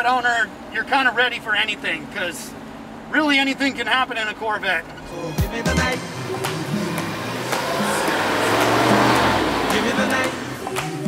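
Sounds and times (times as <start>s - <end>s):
background music: 5.0s - 11.0s
car driving past: 5.0s - 11.0s.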